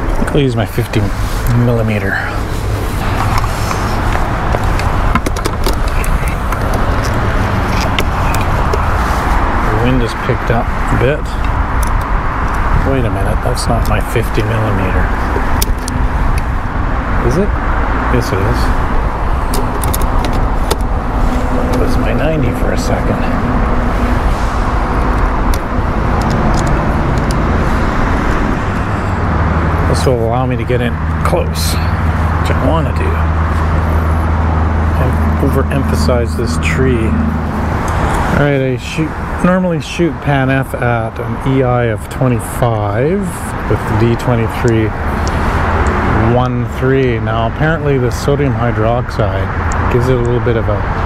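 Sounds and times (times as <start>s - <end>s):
low outdoor rumble: 0.0s - 51.0s.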